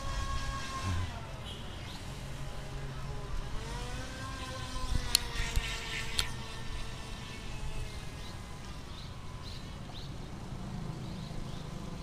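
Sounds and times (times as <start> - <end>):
electric motor whining: 0.0 - 1.4, 2.2 - 9.4.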